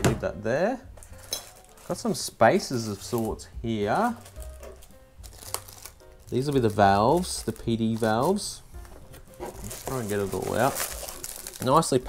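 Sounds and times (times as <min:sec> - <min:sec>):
packaging crinkling: 0:01.2 - 0:02.2, 0:04.0 - 0:12.0
parts handled in cardboard box: 0:06.7 - 0:11.7.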